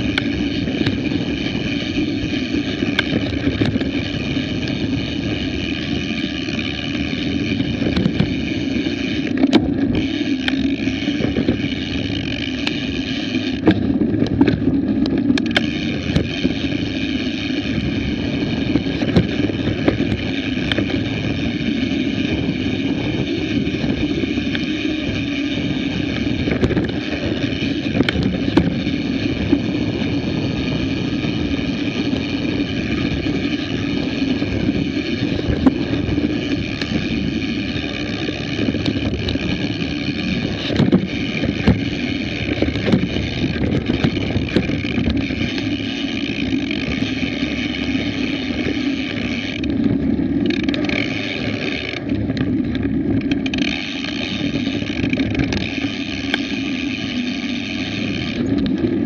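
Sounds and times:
bike tyres rolling and rattling: 0:00.0 - 0:59.0
high whirr: 0:00.0 - 0:59.0.

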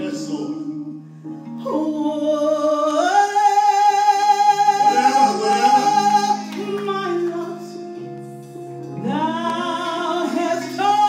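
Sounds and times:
instrumental accompaniment: 0:00.0 - 0:11.0
woman singing gospel solo: 0:01.6 - 0:08.4, 0:09.0 - 0:11.0.

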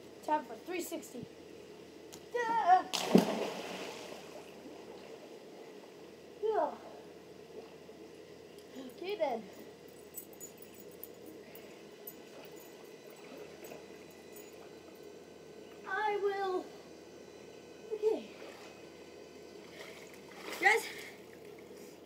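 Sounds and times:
loud splash into pool: 0:02.9 - 0:04.4.

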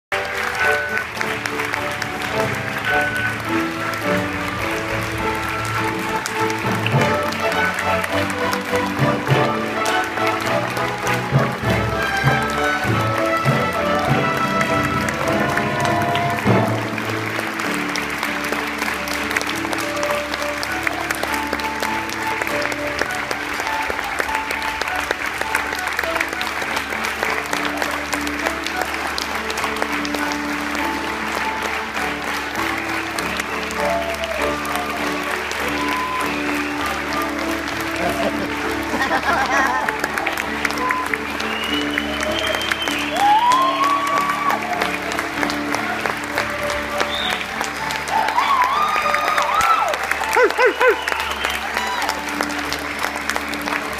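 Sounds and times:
audience applauding: 0:00.0 - 0:53.9
orchestra playing: 0:00.1 - 0:53.9.

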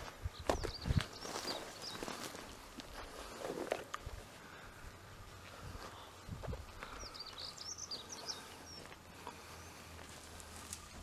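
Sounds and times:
footsteps through grass and brush: 0:00.0 - 0:04.4, 0:08.4 - 0:11.0.

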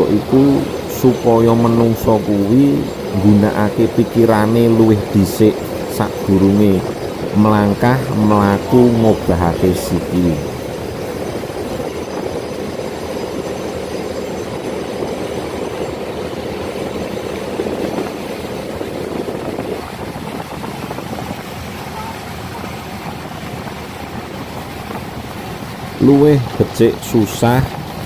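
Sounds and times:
boat engine running: 0:00.0 - 0:28.0
water rushing past hull: 0:00.0 - 0:28.0.

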